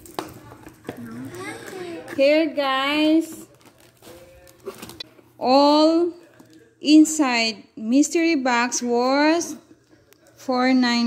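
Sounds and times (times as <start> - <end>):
quiet murmured speech: 0.3 - 2.3, 9.4 - 10.6.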